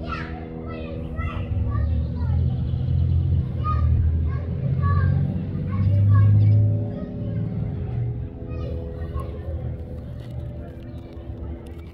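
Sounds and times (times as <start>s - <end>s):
faint voices: 0.0s - 11.9s.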